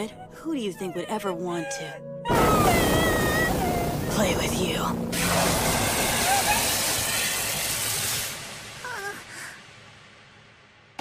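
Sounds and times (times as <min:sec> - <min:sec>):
rushing blast hiss: 0:02.3 - 0:10.6.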